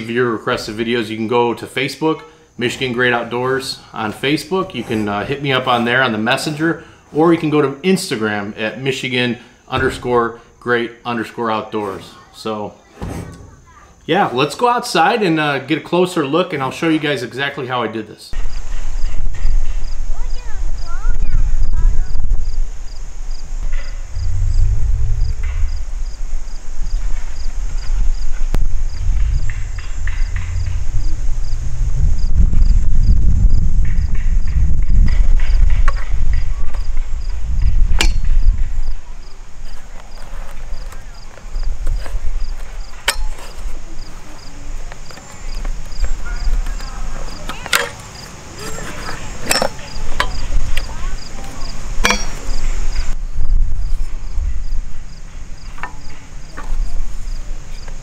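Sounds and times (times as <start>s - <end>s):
cricket chirping: 0.0s - 58.0s
wind buffeting microphone: 18.4s - 39.9s, 48.5s - 58.0s
low rumble: 21.5s - 36.4s.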